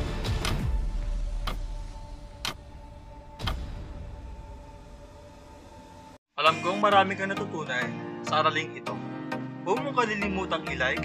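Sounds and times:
background music: 0:00.0 - 0:11.0
clock-like ticks: 0:00.2 - 0:01.7.

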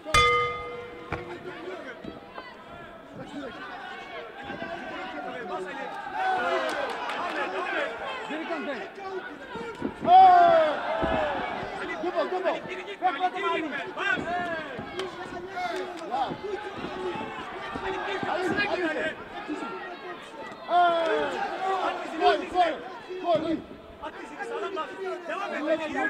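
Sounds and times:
boxing bell ringing: 0:00.0 - 0:01.9
crowd shouting: 0:00.0 - 0:26.0.

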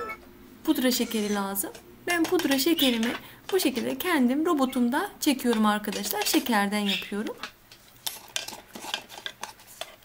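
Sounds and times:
plastic spatula scraping steel bowl: 0:02.2 - 0:03.6, 0:05.5 - 0:07.1, 0:08.1 - 0:10.0.

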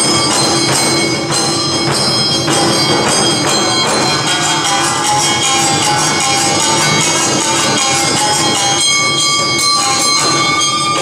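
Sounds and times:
barrel drums beating: 0:00.0 - 0:11.0.

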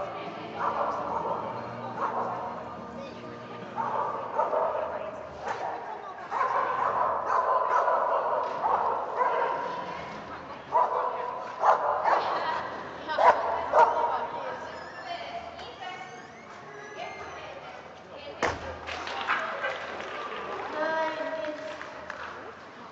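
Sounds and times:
people talking in echoing hall: 0:00.0 - 0:22.9
dogs barking: 0:00.5 - 0:02.8, 0:03.7 - 0:09.8, 0:10.7 - 0:12.6, 0:13.2 - 0:14.3.

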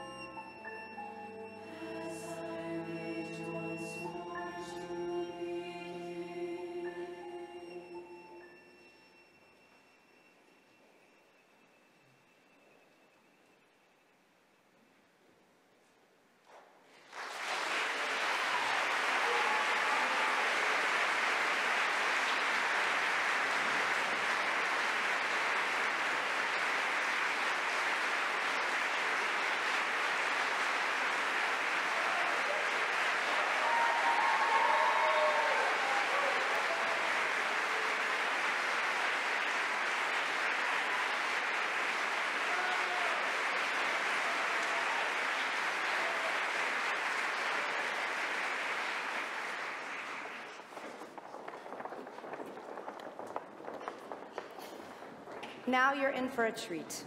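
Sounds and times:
audience applauding: 0:00.0 - 0:05.8, 0:16.9 - 0:55.6
faint cheers: 0:17.7 - 0:22.6, 0:31.7 - 0:39.5, 0:40.1 - 0:48.2.

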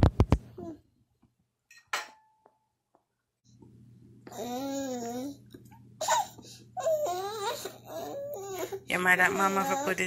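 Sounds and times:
tableware clink: 0:01.7 - 0:02.6.

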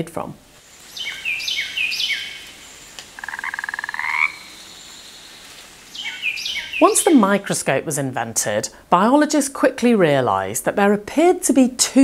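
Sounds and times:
bird chirp: 0:00.8 - 0:07.6
frog croaking: 0:00.9 - 0:05.2.

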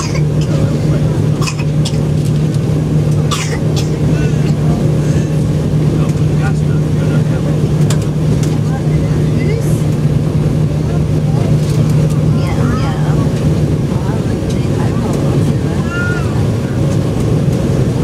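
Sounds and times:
faint passenger voices: 0:00.0 - 0:18.0
jet engine cabin hum: 0:00.0 - 0:18.0.

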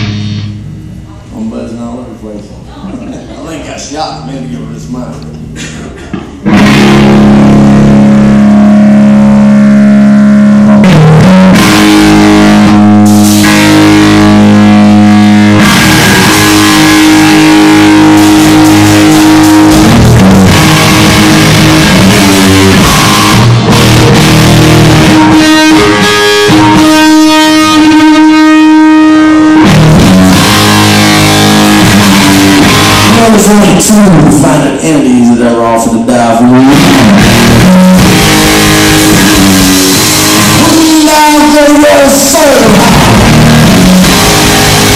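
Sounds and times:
live rock band playing: 0:00.0 - 0:01.0, 0:05.4 - 0:34.8, 0:36.2 - 0:44.9
distorted electric guitar: 0:00.0 - 0:01.3, 0:04.2 - 0:44.9.

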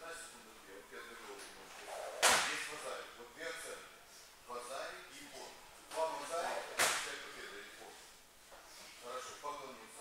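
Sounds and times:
sharp smack: 0:02.2 - 0:02.6, 0:06.8 - 0:07.2.

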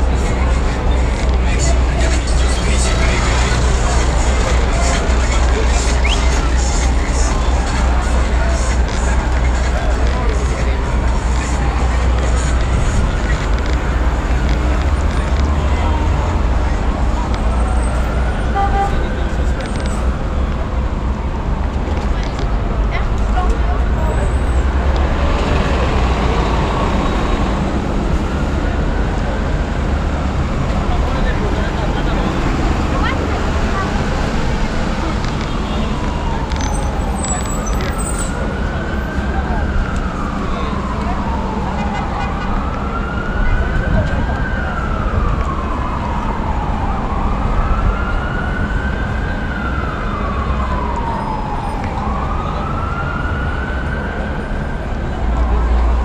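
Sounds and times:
emergency vehicle siren wailing: 0:00.0 - 0:56.0
low rumble of street noise: 0:00.0 - 0:56.0.

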